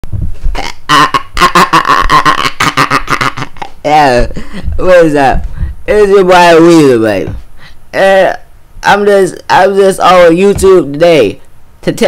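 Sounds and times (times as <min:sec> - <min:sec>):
man laughing loudly: 0:00.6 - 0:05.3.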